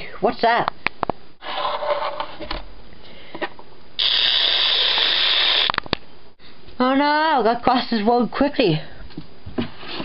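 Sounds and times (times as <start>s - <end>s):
loud steady hiss: 4.0s - 5.8s.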